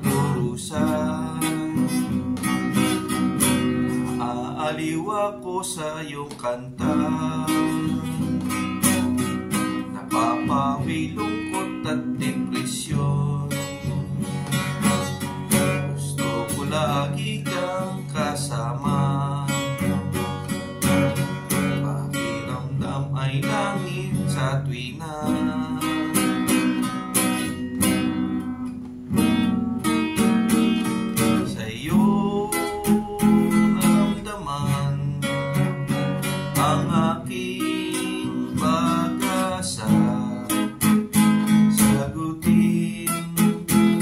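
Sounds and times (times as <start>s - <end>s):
acoustic guitar strummed and picked: 0.0s - 44.0s.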